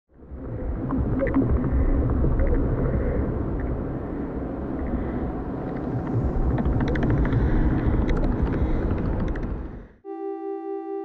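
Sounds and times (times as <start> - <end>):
deep steady rumble: 0.1 - 10.0.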